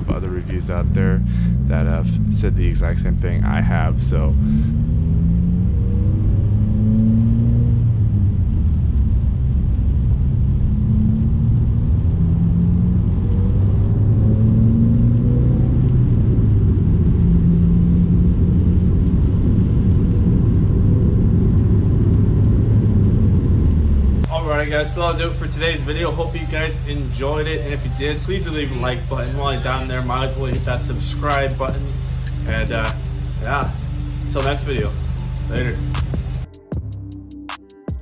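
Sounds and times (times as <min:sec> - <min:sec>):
car engine and road noise: 0:00.0 - 0:38.0.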